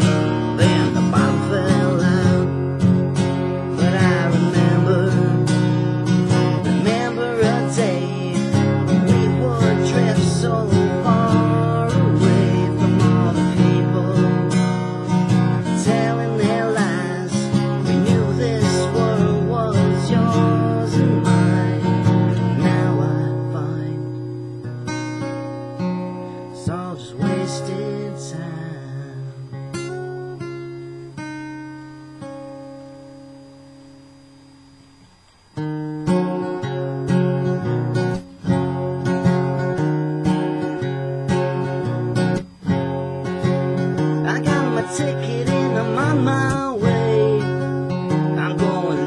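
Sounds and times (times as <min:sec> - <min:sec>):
acoustic guitar strumming: 0:00.0 - 0:49.0.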